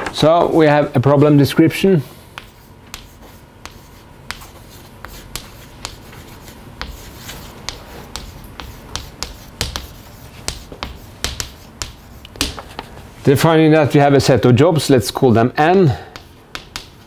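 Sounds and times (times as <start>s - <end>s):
chalk writing on chalkboard: 2.2s - 12.9s, 15.6s - 17.0s.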